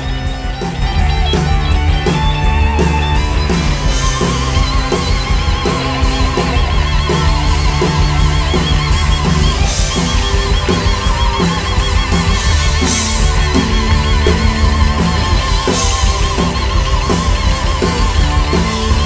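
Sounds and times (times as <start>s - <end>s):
bass: 0.0s - 19.0s
drum kit beat: 0.0s - 19.0s
electric guitars: 0.0s - 19.0s
lead guitar line with vibrato: 0.0s - 19.0s.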